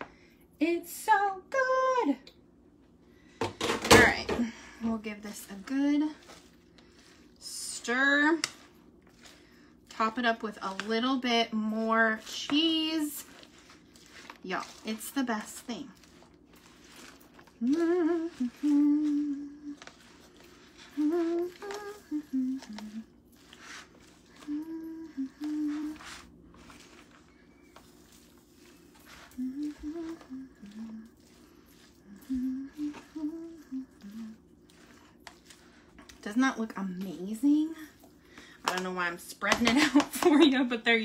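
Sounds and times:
spatula scraping plastic container: 0:03.4 - 0:40.6
woman humming: 0:17.6 - 0:19.8, 0:20.9 - 0:23.1, 0:24.3 - 0:26.1, 0:29.3 - 0:31.2, 0:32.0 - 0:34.4.

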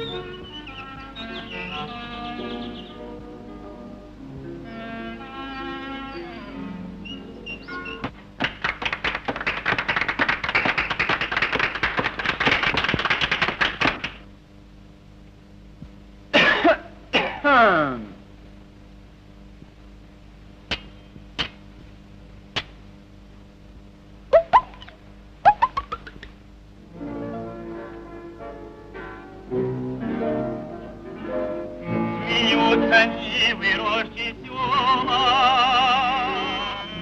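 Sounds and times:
soft music chords: 0:00.0 - 0:08.0
squeaky cartoon bird chirps: 0:07.1 - 0:08.1, 0:24.3 - 0:24.9, 0:25.5 - 0:26.2
many hands clapping: 0:08.0 - 0:14.2.

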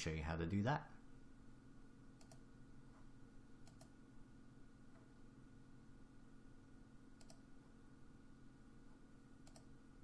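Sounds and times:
faint room hum: 0:00.0 - 0:10.0
computer mouse clicks: 0:02.2 - 0:02.5, 0:03.6 - 0:04.0, 0:07.1 - 0:07.7, 0:09.4 - 0:09.8.

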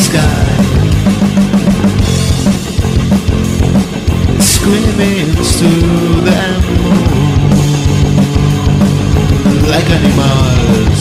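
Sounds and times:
drum kit hits: 0:00.0 - 0:11.0
electric guitar: 0:00.0 - 0:11.0
rock band playing: 0:00.0 - 0:11.0.

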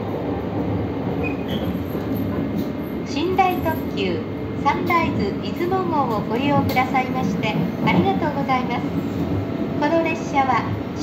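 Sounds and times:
train wheels rumbling on rail: 0:00.0 - 0:11.0
faint high squeaks: 0:01.2 - 0:01.9.

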